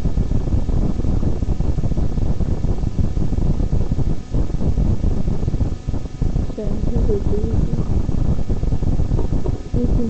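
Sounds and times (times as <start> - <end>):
low rumbling microphone noise: 0.0 - 10.0.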